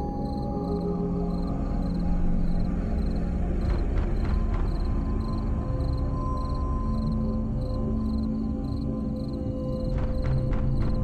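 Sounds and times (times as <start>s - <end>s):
droning horror score: 0.0s - 11.0s.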